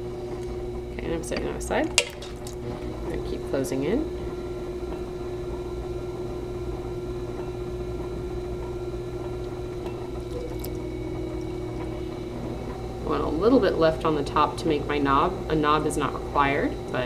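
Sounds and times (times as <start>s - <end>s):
potter's wheel motor hum: 0.0s - 17.0s.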